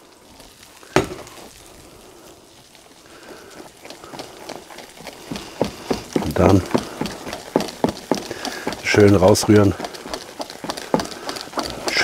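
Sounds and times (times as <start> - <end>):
sharp knock: 1.0 - 1.3.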